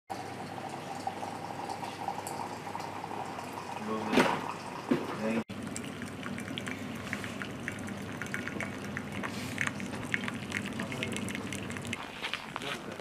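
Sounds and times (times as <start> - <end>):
hot water pouring into a jug: 0.1 - 4.9, 5.5 - 13.0.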